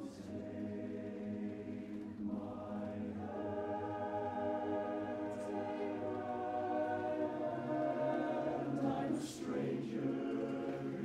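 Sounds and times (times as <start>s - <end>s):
male chorus singing a cappella: 0.0s - 11.0s.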